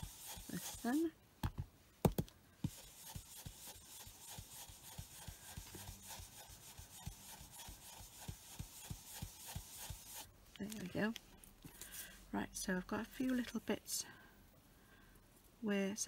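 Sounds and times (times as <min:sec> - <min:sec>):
brush rubbing on card: 0:00.0 - 0:01.1, 0:02.6 - 0:10.3.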